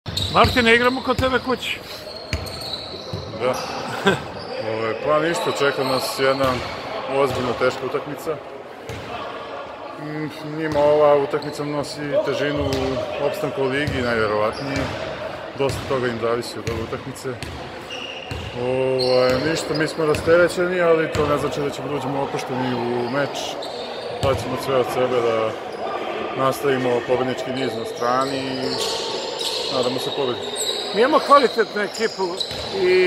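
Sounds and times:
basketballs bouncing on gym floor: 0:16.6 - 0:17.6, 0:18.3 - 0:18.5, 0:32.5 - 0:32.9.

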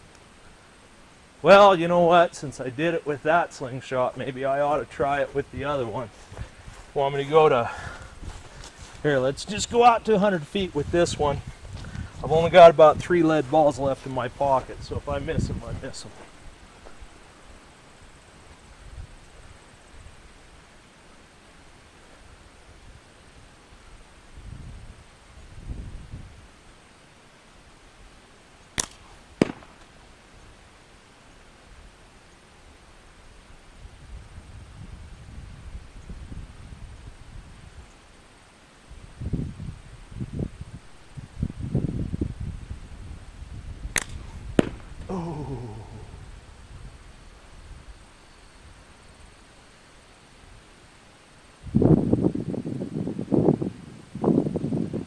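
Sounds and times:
ball smacking target: 0:28.8 - 0:29.9, 0:44.0 - 0:45.1
slingshot snap: 0:28.8 - 0:30.0, 0:43.9 - 0:45.1.

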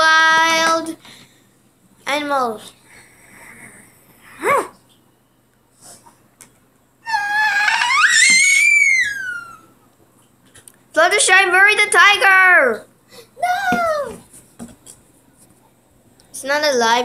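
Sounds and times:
child's pretend wail: 0:07.0 - 0:09.7.

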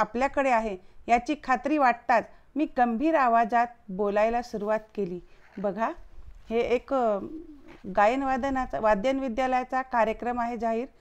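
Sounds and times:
bird cooing: 0:07.2 - 0:07.8.

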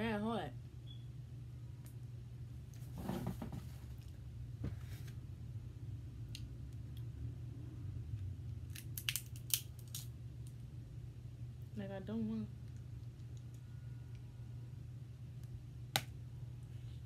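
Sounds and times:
steady low hum: 0:00.0 - 0:17.0
crab shell cracking and snapping: 0:08.7 - 0:10.6.

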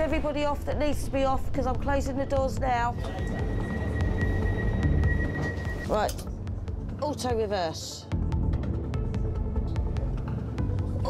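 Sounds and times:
steady high warning tone: 0:02.9 - 0:06.2.

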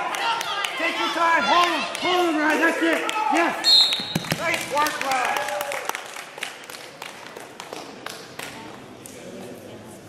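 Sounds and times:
spectators clapping: 0:00.0 - 0:08.8.

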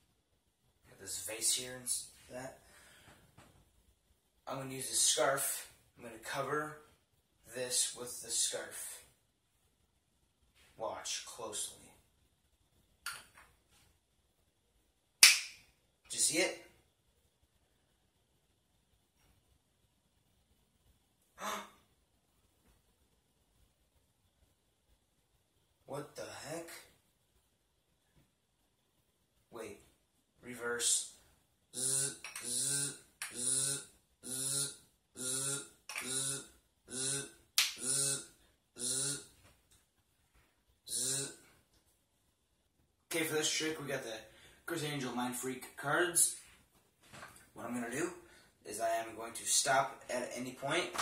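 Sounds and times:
man repeating breathy syllable: 0:21.4 - 0:21.8, 0:31.8 - 0:39.4, 0:40.9 - 0:41.5.

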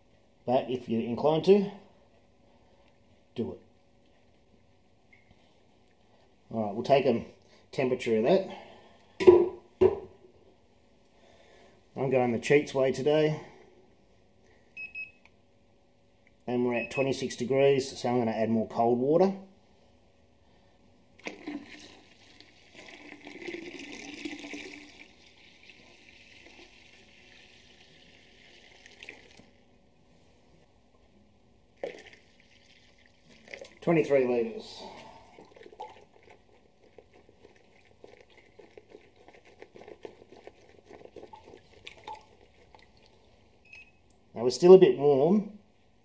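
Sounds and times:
water pouring and splashing: 0:21.2 - 0:29.5, 0:31.8 - 0:33.9, 0:35.2 - 0:43.3.

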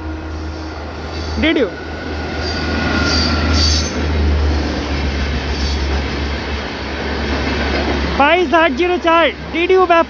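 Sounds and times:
passenger train passing: 0:00.0 - 0:10.0.

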